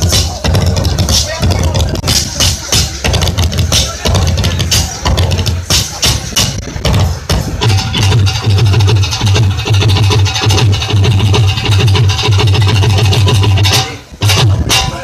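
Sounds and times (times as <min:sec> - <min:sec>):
fast heavy drum beat: 0:00.0 - 0:15.0
folk instrument ensemble: 0:00.0 - 0:15.0.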